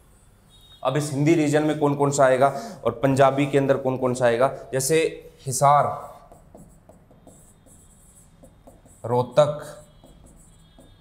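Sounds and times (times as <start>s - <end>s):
marker writing on whiteboard: 0.0s - 11.0s.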